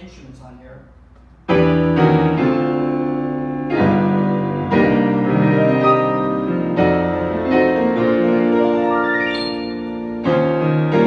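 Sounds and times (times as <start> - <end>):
sustained piano chords: 1.4 - 11.0.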